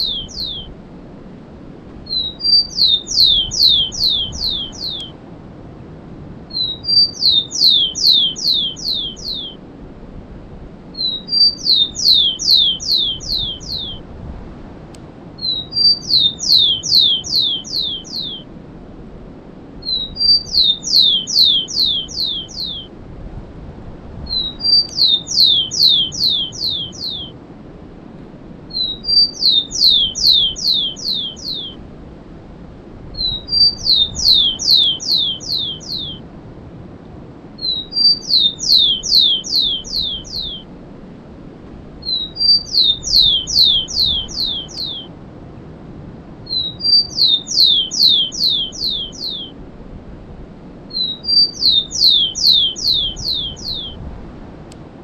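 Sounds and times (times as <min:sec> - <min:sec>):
sparrow singing: 0:00.0 - 0:00.7, 0:02.1 - 0:05.2, 0:06.5 - 0:09.6, 0:11.0 - 0:14.0, 0:15.4 - 0:18.5, 0:19.8 - 0:22.9, 0:24.3 - 0:27.4, 0:28.7 - 0:31.8, 0:33.2 - 0:36.2, 0:37.6 - 0:40.7, 0:42.0 - 0:45.1, 0:46.5 - 0:49.6, 0:50.9 - 0:54.0.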